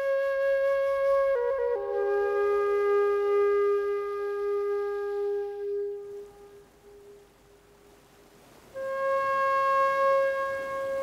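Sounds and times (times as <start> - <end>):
flute playing: 0.0 - 7.2, 8.7 - 11.0.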